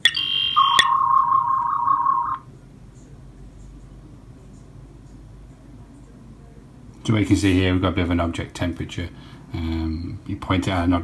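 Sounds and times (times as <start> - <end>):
high electronic beeps: 0.0 - 2.4
wavering scanning tone: 0.0 - 2.4.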